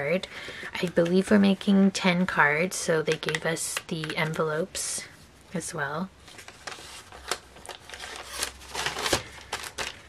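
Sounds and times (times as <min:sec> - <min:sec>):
paper rustling and sliding: 0:06.2 - 0:10.0.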